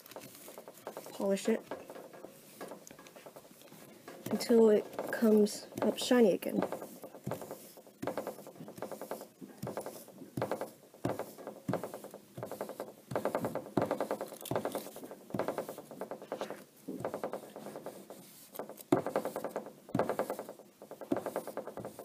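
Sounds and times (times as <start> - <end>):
paper towel rubbing on foil: 0.0 - 22.0.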